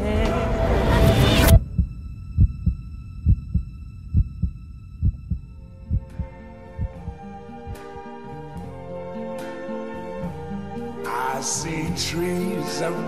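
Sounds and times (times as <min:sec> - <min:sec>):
soft orchestral music: 0:00.0 - 0:13.0
heartbeat thumps: 0:01.5 - 0:08.0
song: 0:01.5 - 0:08.8.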